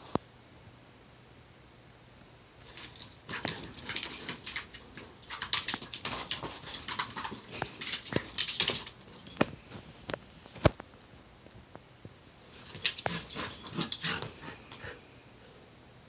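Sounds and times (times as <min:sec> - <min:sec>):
paws scrabbling on wooden floor: 0:02.7 - 0:09.9, 0:12.6 - 0:15.0.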